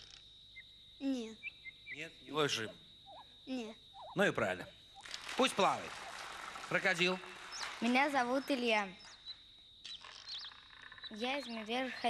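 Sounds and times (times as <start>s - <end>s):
bird-like chirps: 0.0s - 12.0s
high-pitched whine: 1.8s - 12.0s.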